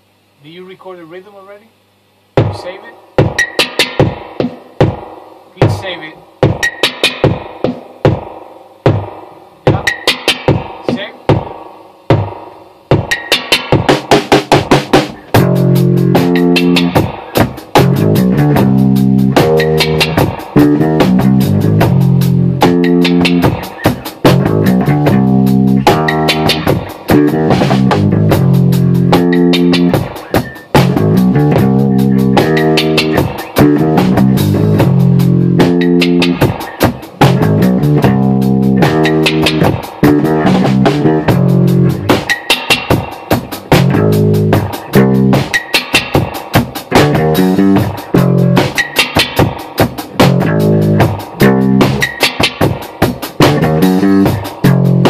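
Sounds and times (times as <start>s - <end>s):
drum machine beat: 1.7s - 55.0s
electric bass funk riff: 2.4s - 8.3s, 8.9s - 55.0s.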